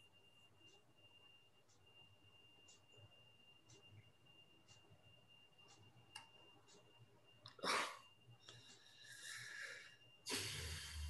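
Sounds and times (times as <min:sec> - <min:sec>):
high-pitched whine: 0:06.8 - 0:11.0.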